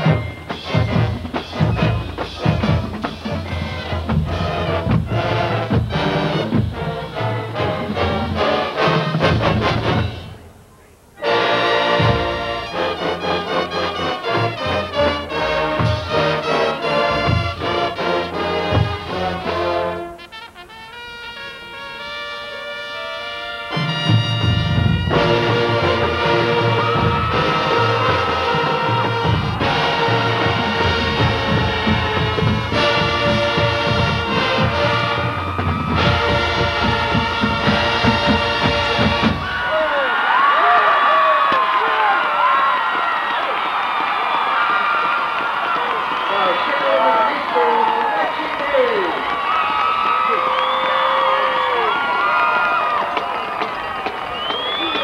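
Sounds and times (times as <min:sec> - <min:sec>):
stadium crowd cheering: 0:00.0 - 0:10.4, 0:11.2 - 0:55.0
marching band playing: 0:00.0 - 0:10.6, 0:11.2 - 0:40.0, 0:45.5 - 0:55.0.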